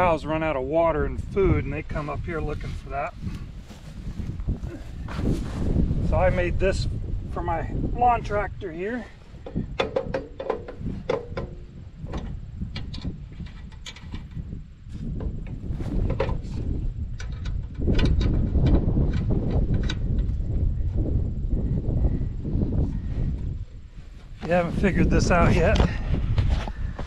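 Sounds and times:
steady low rumble: 0:00.0 - 0:27.0
clicks and knocks from handling wire winder: 0:09.4 - 0:14.4.

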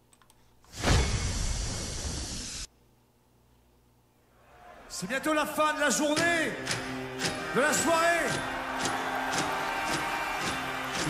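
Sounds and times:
loud hissing burst: 0:00.7 - 0:02.7.

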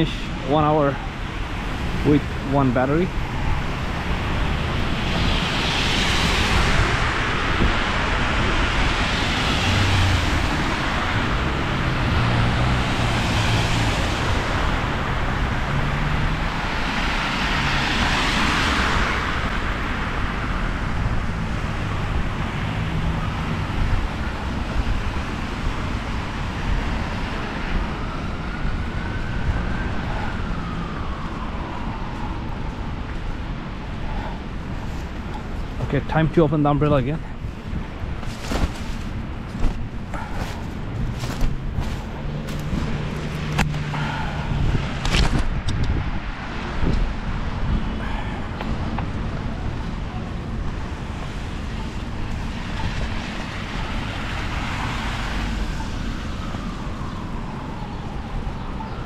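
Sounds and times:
distant siren: 0:00.0 - 0:35.8, 0:39.1 - 0:59.0
low engine hum: 0:37.2 - 0:47.2.

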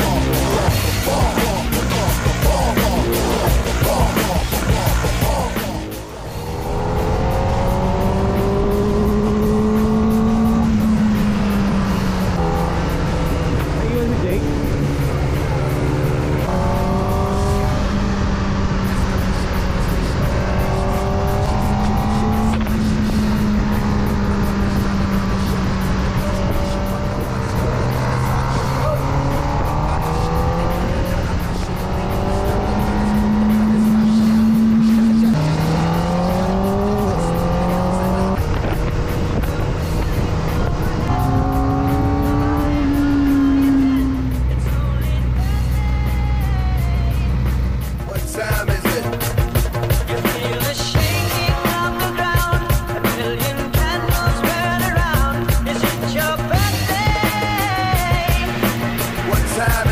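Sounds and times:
motorcycle engine revving through gears: 0:00.0 - 0:45.6
wind noise: 0:36.5 - 0:43.7.

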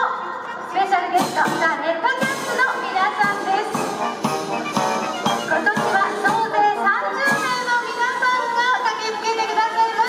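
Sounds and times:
crowd voices: 0:00.0 - 0:10.0
marching band playing: 0:02.2 - 0:08.6.

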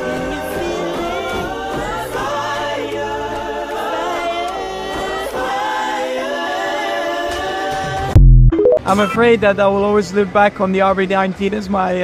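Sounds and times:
choir singing harmonies: 0:00.0 - 0:08.8.

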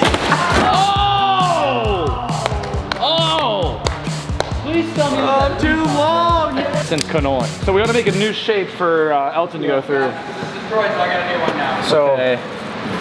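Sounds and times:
upbeat music with drum beat: 0:00.0 - 0:08.3
men shouting and whooping: 0:00.2 - 0:03.8.

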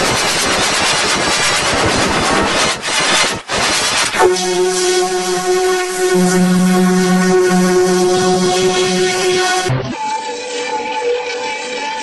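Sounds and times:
harsh distorted noise: 0:04.2 - 0:10.0.

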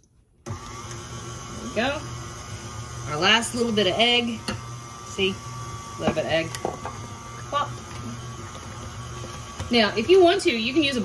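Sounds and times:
beater working batter in bowl: 0:00.5 - 0:11.0
stand mixer running: 0:00.5 - 0:11.0.

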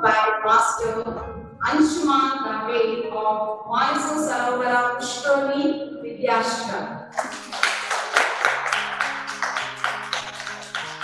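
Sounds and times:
held low notes: 0:00.6 - 0:02.4.

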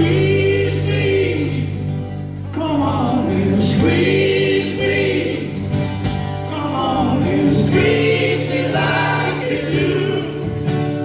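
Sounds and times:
strummed acoustic guitar: 0:00.0 - 0:11.0
man singing into microphone: 0:02.5 - 0:04.0, 0:06.5 - 0:08.1.

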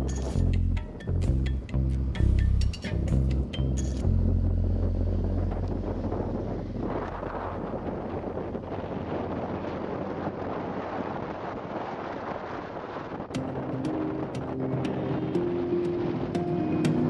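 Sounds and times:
low steady drone: 0:00.0 - 0:11.0, 0:13.2 - 0:17.0
wind rushing over microphone: 0:00.0 - 0:17.0.

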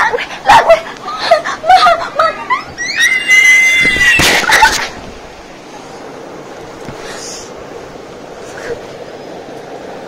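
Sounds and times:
high-pitched scream: 0:02.8 - 0:04.4.

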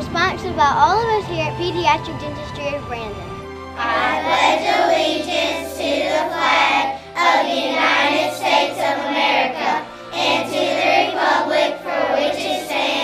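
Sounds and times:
instrumental backing music: 0:00.0 - 0:13.0
children singing together: 0:03.8 - 0:13.0.

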